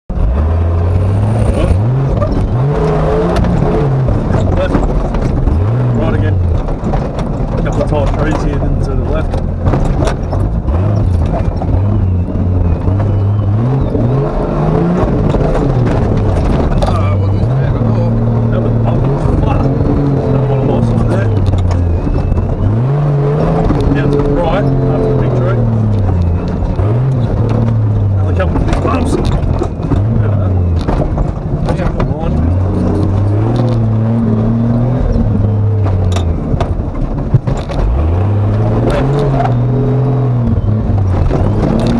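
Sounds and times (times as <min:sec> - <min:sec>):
truck engine revving: 0:00.1 - 0:41.9
body knocks and rattles: 0:01.5 - 0:22.8, 0:23.4 - 0:41.9.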